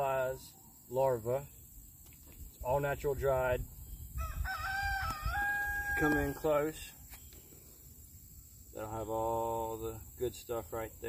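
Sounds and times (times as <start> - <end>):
rooster crowing: 4.2 - 6.6.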